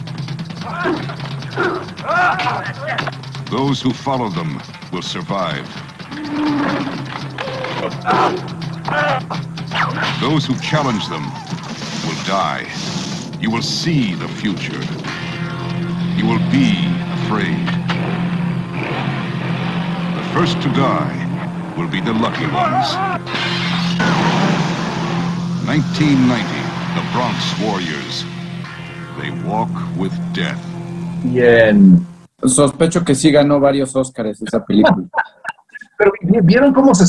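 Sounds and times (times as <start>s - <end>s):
mechanical sound effects: 0.0s - 32.1s
low drone: 0.0s - 33.1s
low hum: 0.0s - 35.2s
voice: 2.1s - 6.9s, 10.0s - 12.8s, 13.4s - 15.0s, 16.1s - 17.8s, 20.2s - 23.2s, 25.6s - 28.3s, 29.1s - 37.0s
rush of noise: 4.4s - 32.3s.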